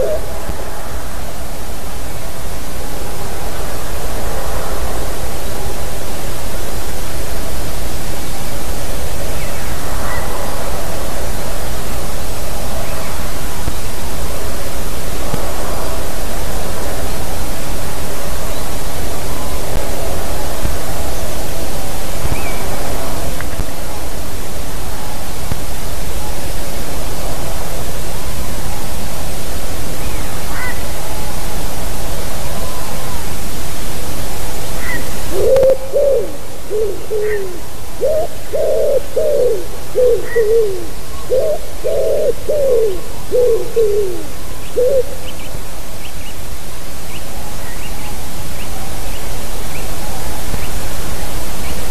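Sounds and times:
wood pigeon cooing: 0:00.0 - 0:00.6, 0:34.8 - 0:45.3
small birds calling: 0:34.8 - 0:46.4.

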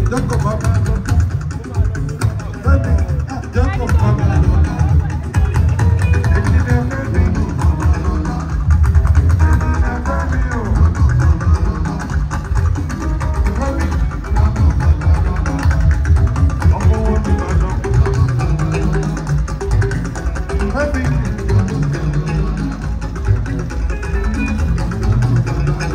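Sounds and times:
dense percussion: 0:00.0 - 0:25.9
heavy bass guitar: 0:00.0 - 0:25.9
plucked guitar lines: 0:00.0 - 0:25.9.

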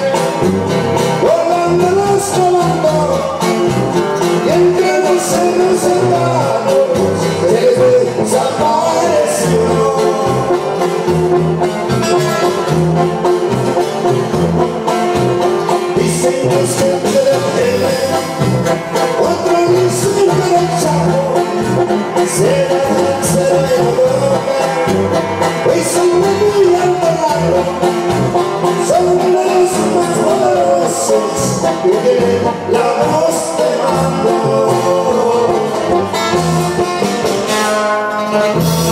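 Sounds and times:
brass: 0:00.0 - 0:38.9
drums: 0:00.0 - 0:38.9
live norteno band: 0:00.0 - 0:38.9
strummed acoustic guitar: 0:00.0 - 0:38.9
tuba bass line: 0:00.0 - 0:38.9.

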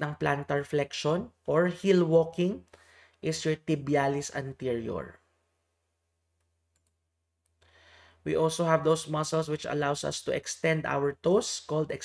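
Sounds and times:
computer mouse clicks: 0:06.4 - 0:07.6.

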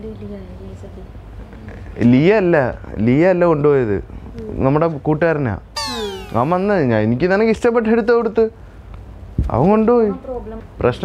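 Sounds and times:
man's wavering drawn-out voice: 0:05.8 - 0:06.8
high falling glide: 0:05.8 - 0:07.0.

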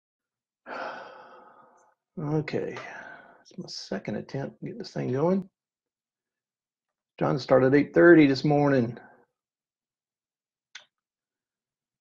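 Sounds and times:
man sighing: 0:00.7 - 0:01.6.

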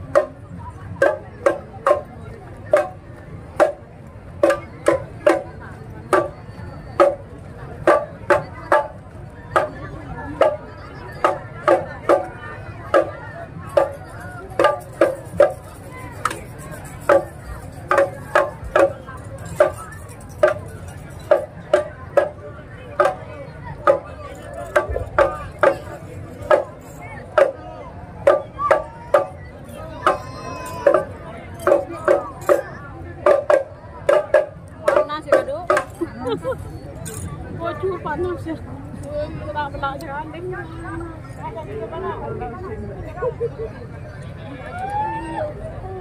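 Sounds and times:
marching drum strokes: 0:00.0 - 0:36.6
low background murmur: 0:00.0 - 0:46.0.

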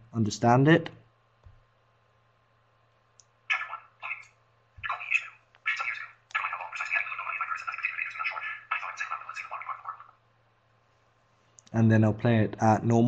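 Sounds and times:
sped-up speech through speaker: 0:04.8 - 0:10.2.

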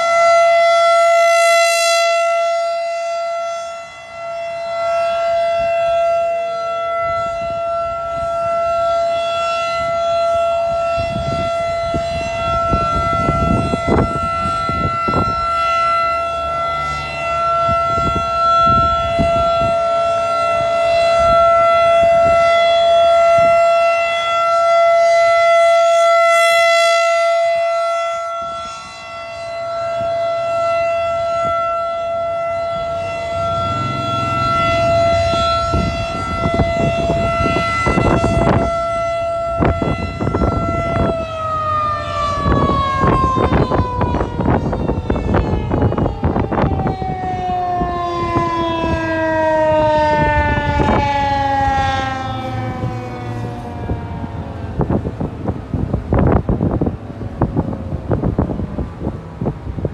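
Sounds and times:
warning siren steady tone: 0:00.0 - 0:59.9.

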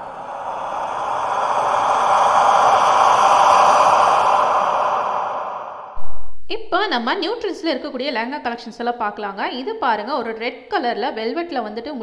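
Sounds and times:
long whoosh: 0:00.0 - 0:07.2.

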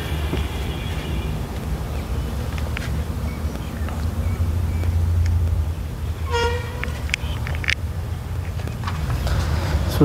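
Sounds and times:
vehicle horn toot: 0:00.0 - 0:01.5, 0:06.2 - 0:07.6
steady low rumble: 0:00.0 - 0:10.0.

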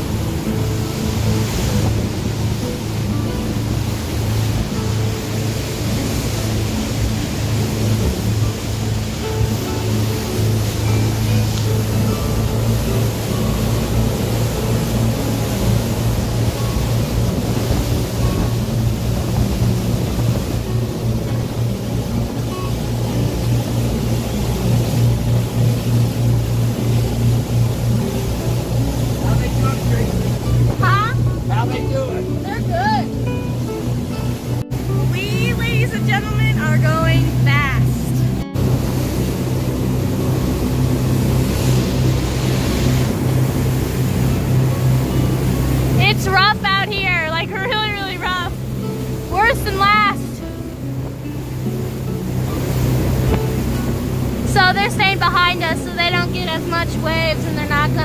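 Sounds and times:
motorboat engine drone: 0:00.0 - 0:58.0
water rushing in wake: 0:00.0 - 0:58.0.

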